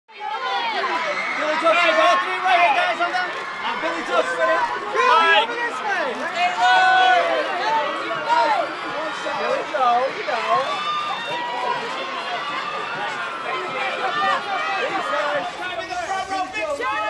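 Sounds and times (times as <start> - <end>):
photographers shouting: 13.1 - 17.0.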